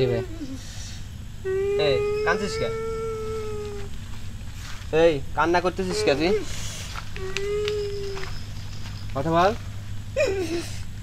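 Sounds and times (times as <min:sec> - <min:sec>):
man speaking: 0:01.8 - 0:02.8, 0:05.0 - 0:06.6.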